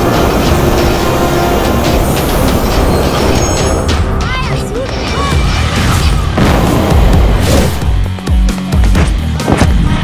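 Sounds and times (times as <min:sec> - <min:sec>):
dramatic action music: 0:00.0 - 0:10.0.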